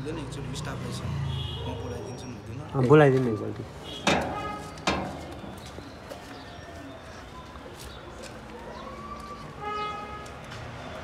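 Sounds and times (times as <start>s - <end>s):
faint outdoor background: 0.0s - 11.0s
metal gate flap clanging: 4.0s - 5.4s.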